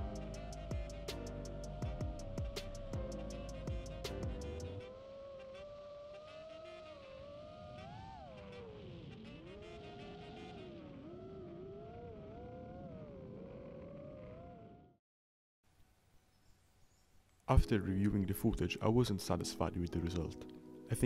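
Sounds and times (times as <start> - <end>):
drone motors and propellers whining: 0.0 - 15.0.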